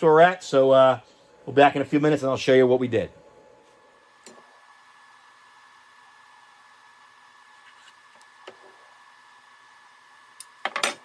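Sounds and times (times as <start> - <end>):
faint steady high whine: 0.0 - 11.0.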